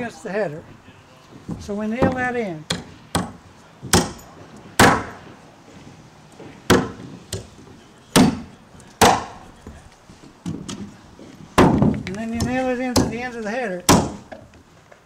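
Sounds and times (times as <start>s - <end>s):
hammer driving nails into wood: 2.0s - 5.2s, 6.7s - 7.5s, 9.0s - 9.4s, 13.9s - 14.5s.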